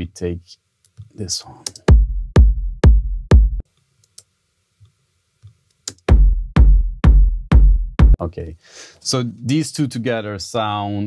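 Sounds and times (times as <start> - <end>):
kick drum loop: 1.7 - 3.6, 5.9 - 8.2.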